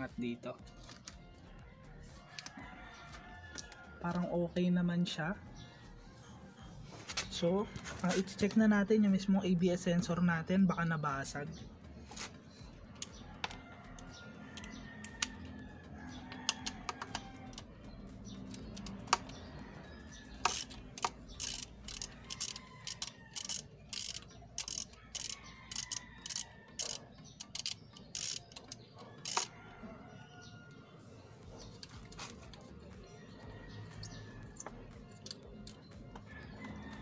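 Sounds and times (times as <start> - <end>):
ratchet wrench clicking: 13.0 - 15.4, 16.6 - 17.7, 18.4 - 19.4, 20.3 - 29.5.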